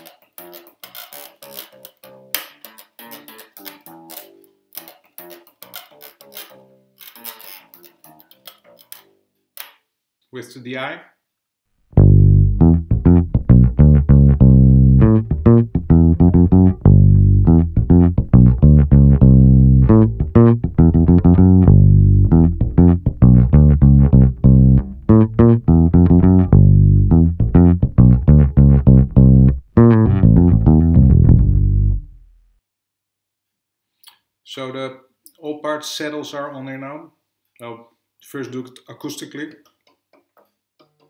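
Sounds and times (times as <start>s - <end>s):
plucked bass guitar notes: 0.0s - 4.4s, 11.9s - 32.5s.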